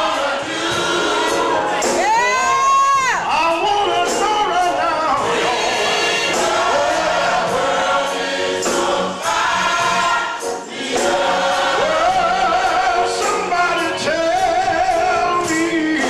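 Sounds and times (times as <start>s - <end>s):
gospel choir singing: 0.0s - 16.0s.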